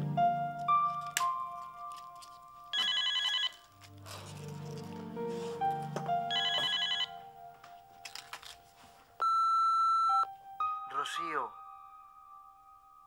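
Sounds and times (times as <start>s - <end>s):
soft background music: 0.0s - 13.0s
telephone warbling ring: 2.8s - 3.6s, 6.3s - 7.1s.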